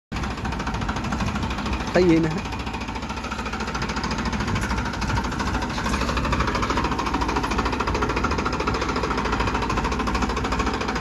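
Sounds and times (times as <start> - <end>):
tractor diesel engine running: 0.1 - 11.0.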